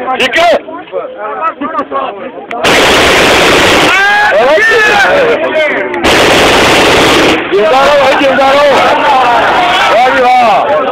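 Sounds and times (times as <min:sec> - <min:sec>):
automatic gunfire burst: 0:02.6 - 0:04.2, 0:06.0 - 0:07.5.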